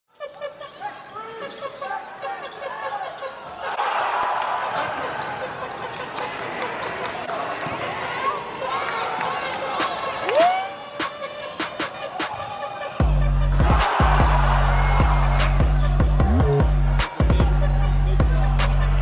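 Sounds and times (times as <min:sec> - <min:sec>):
sneakers squeaking: 0:00.1 - 0:13.6
crowd voices: 0:00.2 - 0:19.0.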